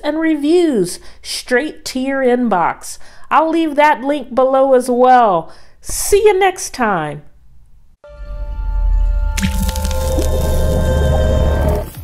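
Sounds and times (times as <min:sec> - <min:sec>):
wet splash and crackle effect: 0:09.4 - 0:12.0.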